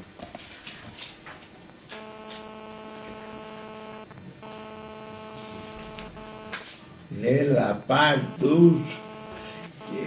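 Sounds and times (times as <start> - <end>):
electrical buzz: 1.9 - 6.8, 7.8 - 10.0.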